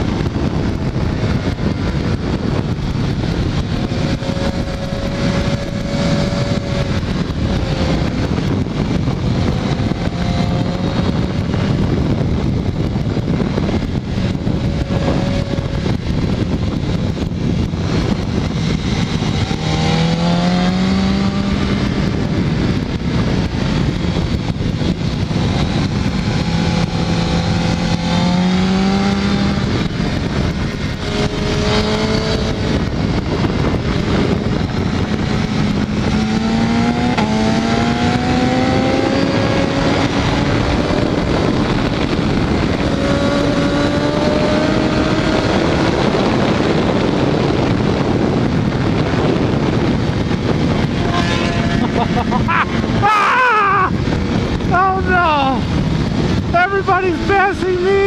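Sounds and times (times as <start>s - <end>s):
motorcycle engine revving: 0.0s - 58.0s
wind and road noise: 0.0s - 58.0s.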